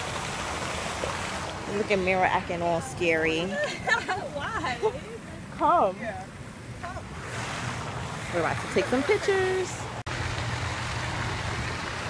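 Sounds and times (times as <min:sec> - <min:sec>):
fountain water splashing: 0:00.0 - 0:12.0.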